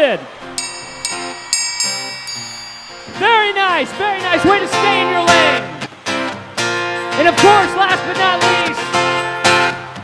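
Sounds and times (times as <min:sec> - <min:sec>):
triangle ringing: 0:00.6 - 0:04.0.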